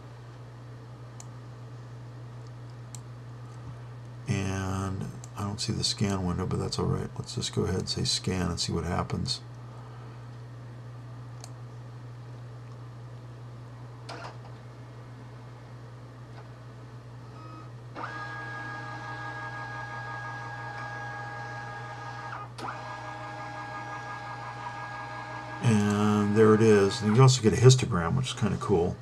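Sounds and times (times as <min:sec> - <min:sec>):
steady low hum: 0:00.0 - 0:29.0
scan motor whine: 0:17.3 - 0:27.4.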